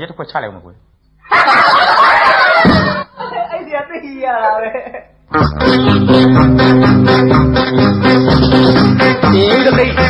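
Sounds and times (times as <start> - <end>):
loud laughter: 1.2 - 3.5.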